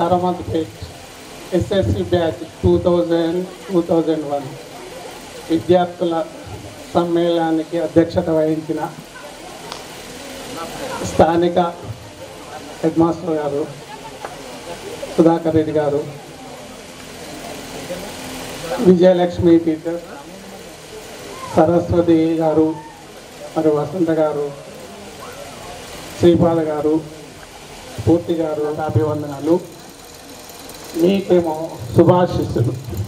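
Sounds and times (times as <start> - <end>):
low background noise: 0.0 - 33.0
steady hum: 0.0 - 33.0
man speaking over loudspeakers: 1.6 - 4.6, 26.2 - 27.1.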